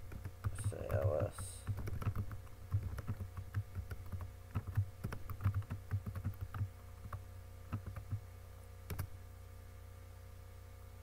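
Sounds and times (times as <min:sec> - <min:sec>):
computer keyboard typing: 0:00.0 - 0:08.2, 0:08.9 - 0:09.1.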